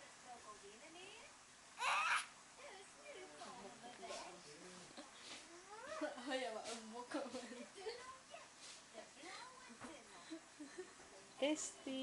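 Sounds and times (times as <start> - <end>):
baby babbling: 1.8 - 2.3.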